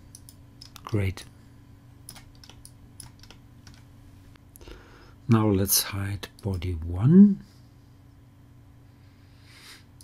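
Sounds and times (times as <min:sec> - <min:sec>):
steady low hum: 0:00.0 - 0:10.0
mouse and keyboard clicking: 0:02.1 - 0:03.8.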